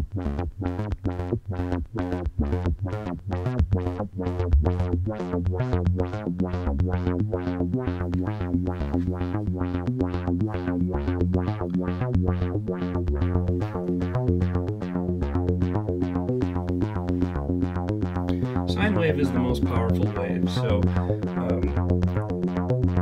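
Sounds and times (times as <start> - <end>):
synthesizer bass sequence: 0.0 - 23.0.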